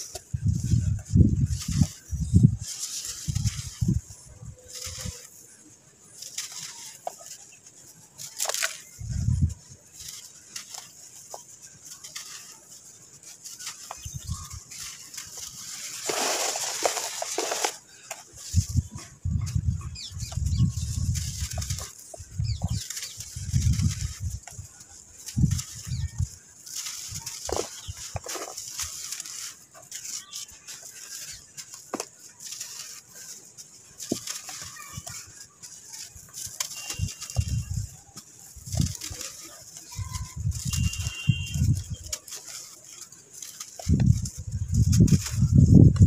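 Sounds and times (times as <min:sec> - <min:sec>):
sand lumps crunching by hand: 0:00.0 - 0:46.0
faint bird chirps: 0:36.7 - 0:37.9, 0:39.9 - 0:42.1.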